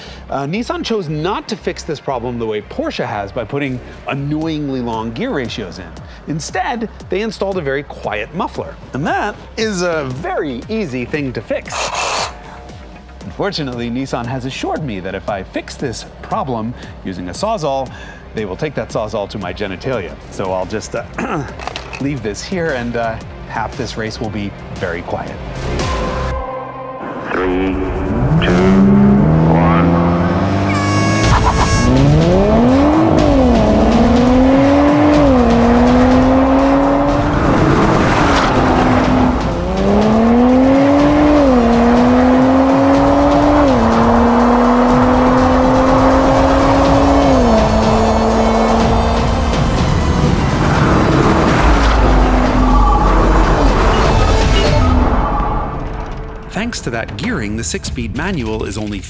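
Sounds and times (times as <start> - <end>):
background music: 0.0 - 59.0
race car engines revving: 27.4 - 55.1.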